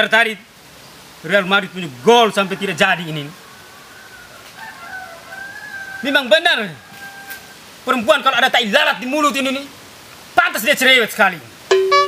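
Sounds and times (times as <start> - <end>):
rooster crowing: 2.1 - 7.7.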